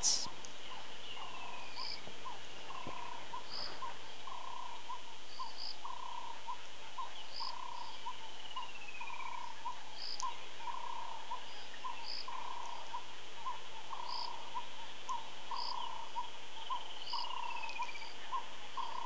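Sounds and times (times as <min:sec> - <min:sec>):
crickets chirping: 0:00.0 - 0:19.0.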